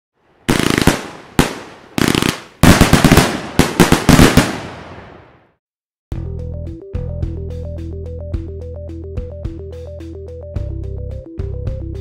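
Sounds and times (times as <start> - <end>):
fireworks bangs and crackle: 0.5 - 5.4.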